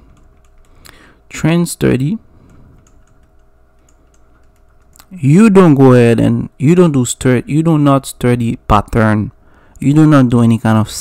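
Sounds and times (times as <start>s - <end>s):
low electrical hum: 0.0s - 11.0s
person speaking: 1.3s - 2.6s, 4.9s - 11.0s.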